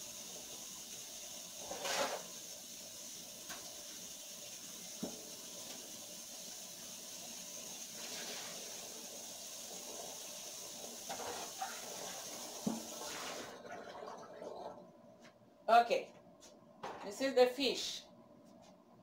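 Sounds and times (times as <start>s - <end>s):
tap running into sink: 11.0s - 13.1s.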